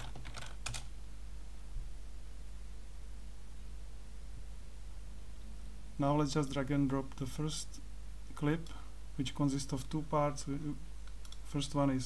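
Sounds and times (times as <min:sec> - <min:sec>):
computer keyboard keystrokes: 0:00.0 - 0:00.9, 0:11.0 - 0:11.4
low steady hum: 0:00.0 - 0:12.0.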